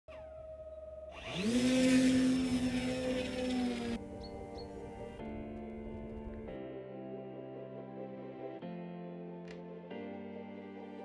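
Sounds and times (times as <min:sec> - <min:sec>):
electric motor whine spinning up: 0:01.1 - 0:06.4.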